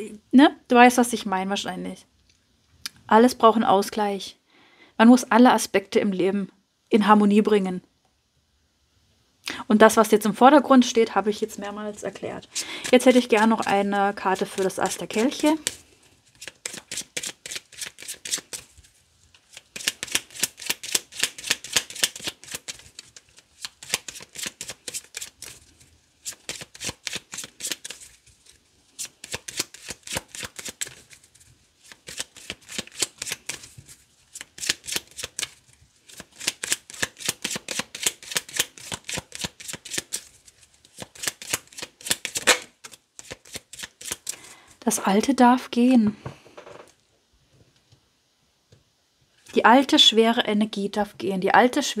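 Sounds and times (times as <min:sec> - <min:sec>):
cards being shuffled: 0:11.4 - 0:44.5
card snap: 0:41.1 - 0:43.6.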